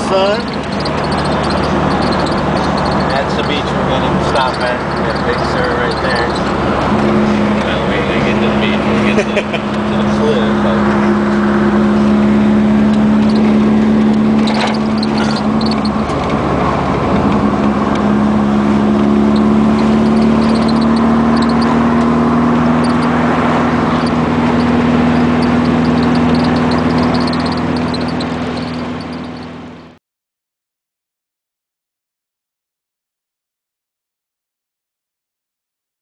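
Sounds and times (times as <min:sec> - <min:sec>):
car engine running: 0:00.0 - 0:30.0
road and wind noise: 0:00.0 - 0:30.0.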